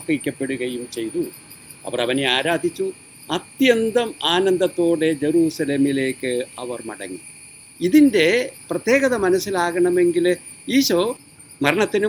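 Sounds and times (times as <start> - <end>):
man reading aloud: 0.0 - 7.2, 7.8 - 12.0
crickets chirring: 0.0 - 12.0.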